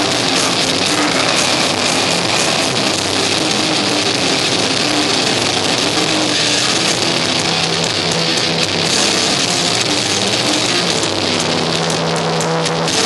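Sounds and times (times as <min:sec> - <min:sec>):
bass holding low notes: 0:00.0 - 0:13.0
cymbals: 0:00.0 - 0:13.0
distorted electric guitars: 0:00.0 - 0:13.0.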